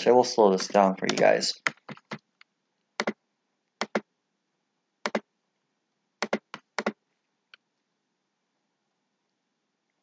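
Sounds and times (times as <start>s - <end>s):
computer mouse clicks: 0.6s - 3.2s, 3.8s - 4.0s, 6.2s - 7.6s.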